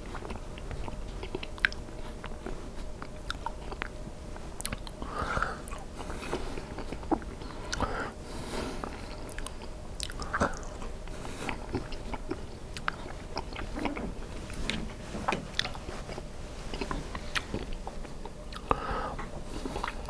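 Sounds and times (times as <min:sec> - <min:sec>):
close chewing: 0:00.0 - 0:08.0, 0:08.7 - 0:20.0.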